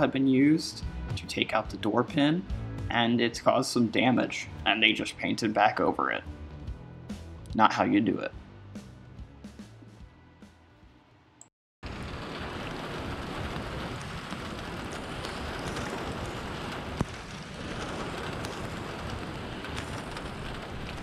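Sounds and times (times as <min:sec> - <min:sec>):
steady rain falling: 0:11.8 - 0:21.0
raindrop taps: 0:12.2 - 0:21.0.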